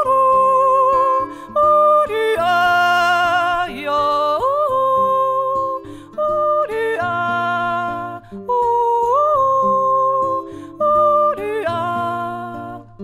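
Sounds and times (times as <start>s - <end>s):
picked nylon-string guitar: 0.0s - 13.0s
woman singing yodel-style notes: 0.0s - 13.0s.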